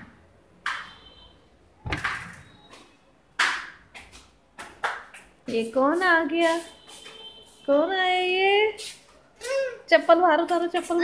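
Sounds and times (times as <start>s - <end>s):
dull thump: 1.8s - 2.4s
sharp knocks: 1.8s - 2.5s.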